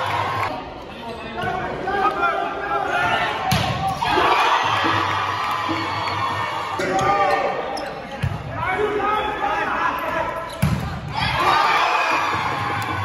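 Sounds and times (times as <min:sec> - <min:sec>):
players shouting: 0:01.5 - 0:07.6, 0:11.1 - 0:13.0.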